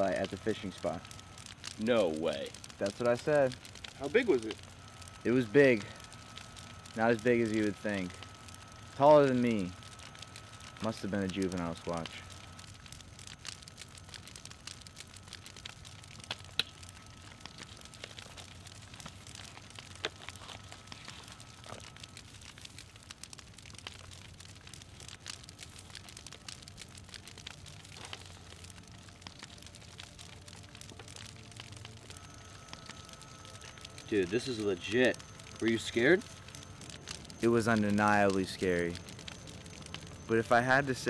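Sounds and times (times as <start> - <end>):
campfire crackling: 0.0 - 41.0
steady low hum: 0.0 - 41.0
faint sustained tones: 27.9 - 41.0.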